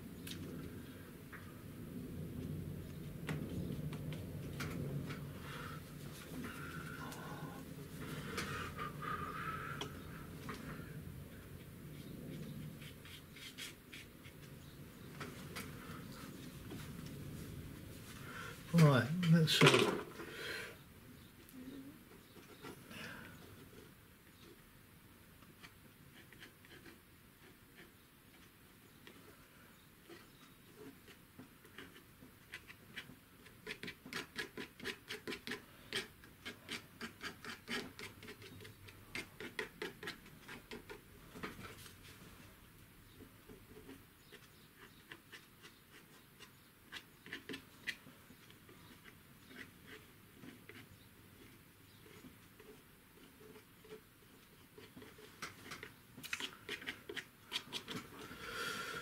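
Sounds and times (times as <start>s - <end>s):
painting tool scratching on paper: 11.8s - 14.6s, 25.4s - 29.3s, 30.0s - 41.9s, 43.2s - 58.2s.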